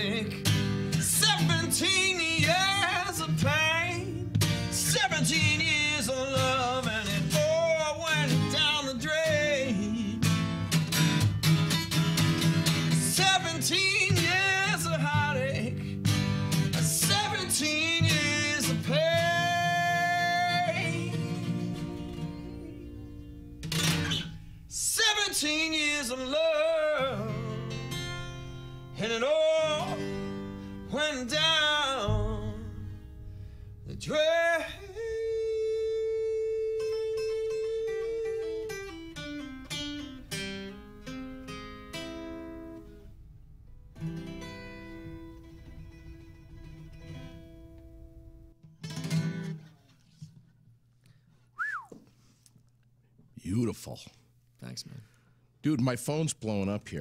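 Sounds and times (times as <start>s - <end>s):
man singing with vibrato: 0.0s - 10.6s, 12.8s - 15.9s, 16.7s - 23.1s, 24.7s - 33.2s, 33.8s - 39.2s
acoustic guitar strumming: 0.0s - 51.8s.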